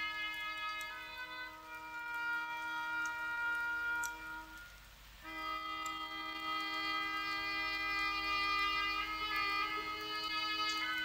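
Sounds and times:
orchestral music with reedy wind note: 0.0 - 11.0.

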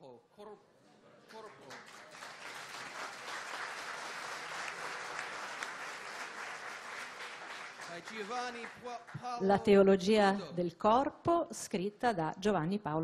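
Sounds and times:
audience applauding: 1.3 - 9.4.

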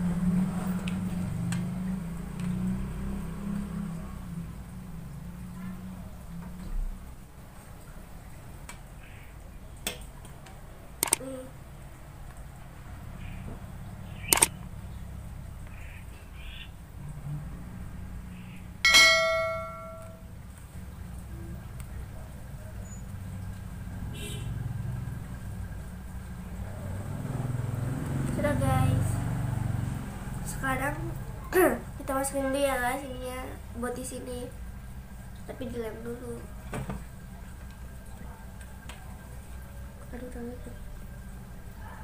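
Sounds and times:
brief ringing tone: 18.9 - 20.3.

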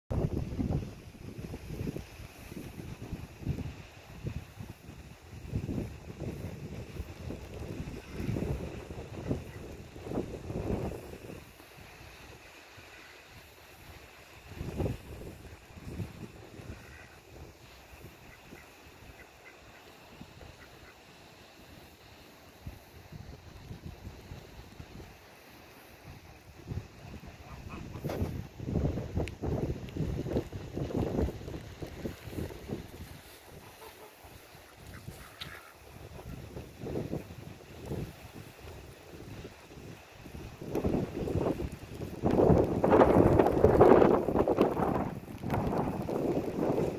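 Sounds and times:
wind buffeting microphone: 0.1 - 12.5, 13.4 - 19.3, 22.6 - 46.9
faint duck calls: 16.6 - 17.2, 18.2 - 21.1, 27.4 - 28.1, 33.6 - 36.4.

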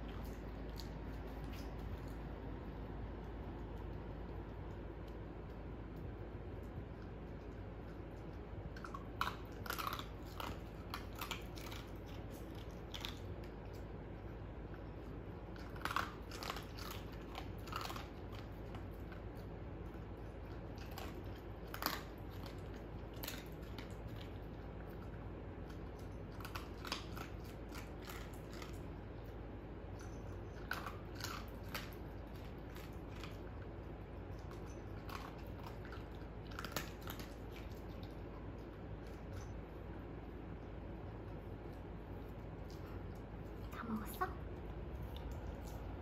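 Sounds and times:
dog chewing crunchy food: 0.0 - 43.8, 44.4 - 46.0.

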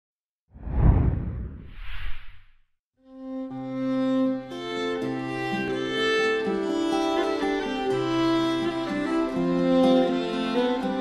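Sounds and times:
deep heavy whoosh: 0.6 - 2.5
higher whoosh: 0.6 - 2.5.

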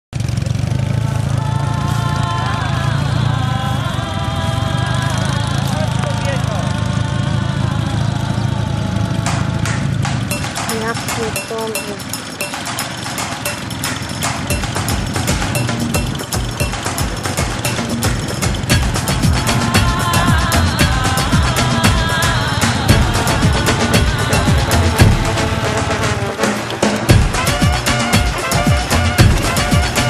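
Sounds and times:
motorcycle engines droning: 0.2 - 30.0
fast regular ticking beat: 9.3 - 30.0
person speaking: 10.3 - 12.6.

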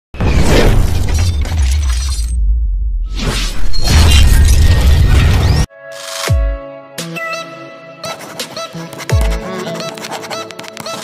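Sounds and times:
glass shattering crash: 0.2 - 2.4.

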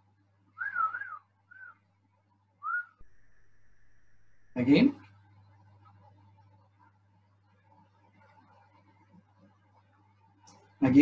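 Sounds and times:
faint steady tone: 0.0 - 10.8
whistled notes: 0.6 - 1.8, 2.6 - 4.5.

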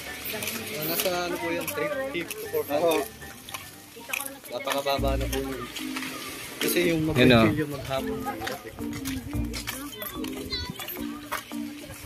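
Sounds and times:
background music: 0.0 - 12.0
background voices of people: 0.0 - 12.0.

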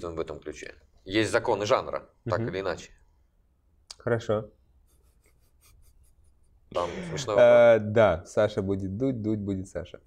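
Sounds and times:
man talking: 0.0 - 3.0, 3.9 - 4.6, 6.7 - 10.0.

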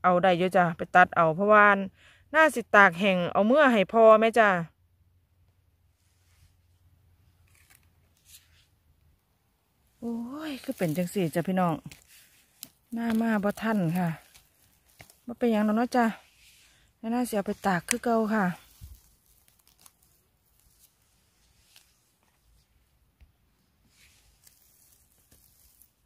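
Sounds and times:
faint crisp rustles: 5.9 - 8.8, 9.8 - 26.0
faint soft ticks and rustles: 10.5 - 15.3.

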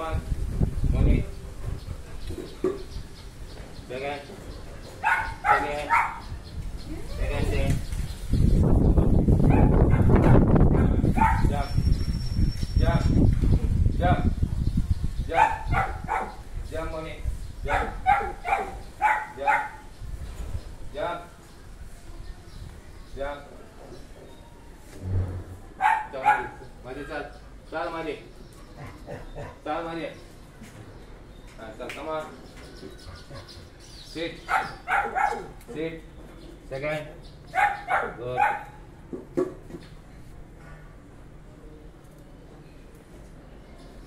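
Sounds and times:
dog barking: 5.0 - 6.3, 9.5 - 11.5, 15.3 - 16.4, 17.7 - 19.9, 25.8 - 26.7, 33.1 - 33.6, 34.5 - 35.6, 37.5 - 38.9.

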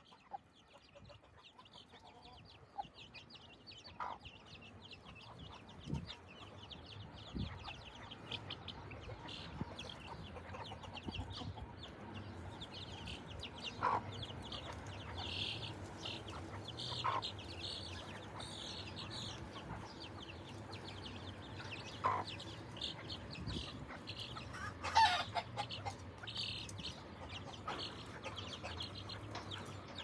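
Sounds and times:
chicks peeping: 0.0 - 30.0.

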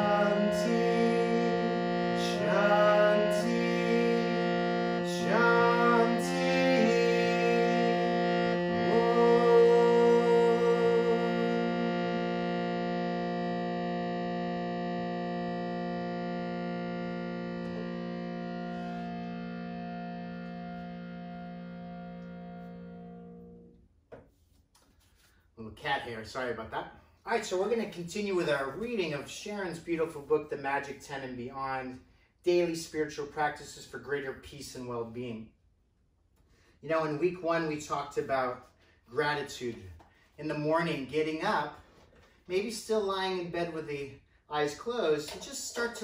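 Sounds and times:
man chanting: 0.0 - 11.7, 42.5 - 46.0
harmonium drone chord: 0.0 - 23.8.

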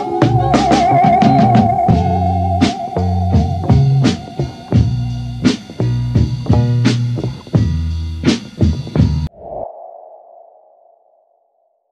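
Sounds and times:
electronic ping tone: 0.0 - 4.9
song with drums: 0.0 - 9.3.

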